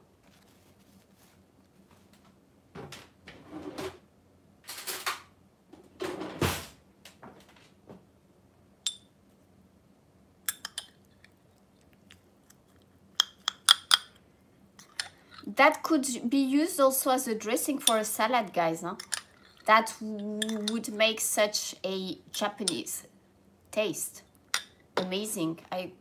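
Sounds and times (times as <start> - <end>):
rustling handling noises: 0.0 - 2.4
metal spoon clinking in porcelain cup: 8.9 - 9.1, 10.5 - 11.0, 20.4 - 20.9.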